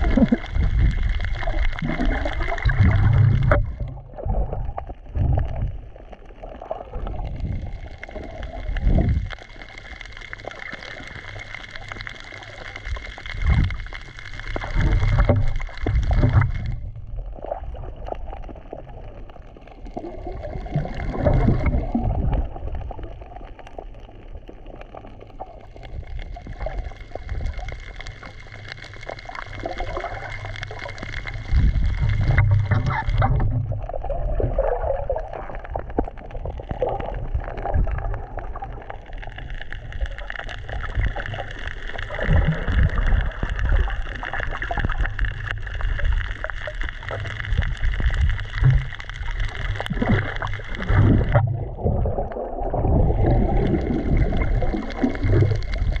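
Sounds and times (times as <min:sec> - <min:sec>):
muffled underwater rumble and hiss: 0:00.0 - 0:52.0.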